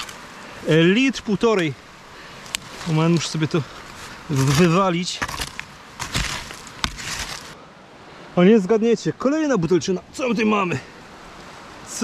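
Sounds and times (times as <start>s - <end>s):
hand digging in soil: 2.4s - 7.6s.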